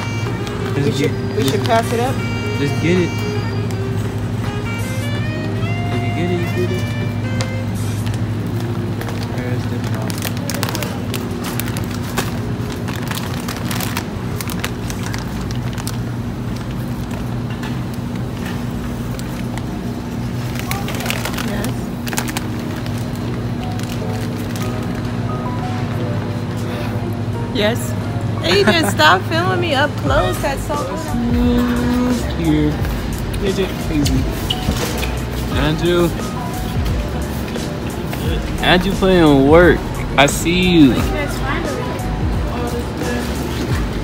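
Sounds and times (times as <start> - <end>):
background music: 0.0 - 9.6, 21.7 - 44.0
indistinct voices: 27.7 - 44.0.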